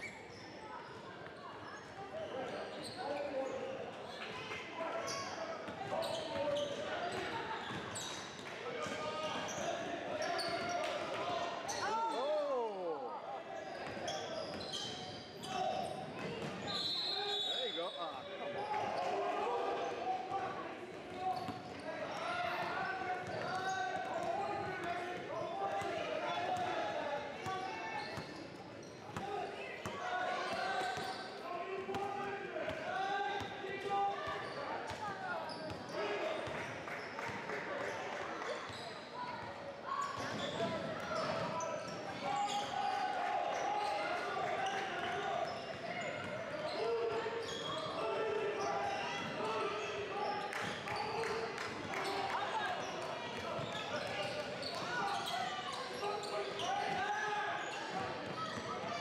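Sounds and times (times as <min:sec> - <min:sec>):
voices echoing in gym: 0:00.0 - 0:59.0
referee's whistle: 0:16.6 - 0:18.3.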